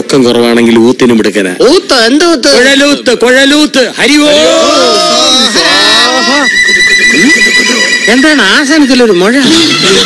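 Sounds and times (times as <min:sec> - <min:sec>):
steady high held note: 0:04.8 - 0:10.0.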